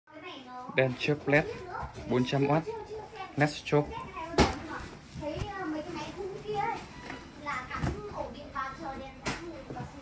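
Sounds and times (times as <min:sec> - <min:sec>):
children chattering: 0:00.1 - 0:10.0.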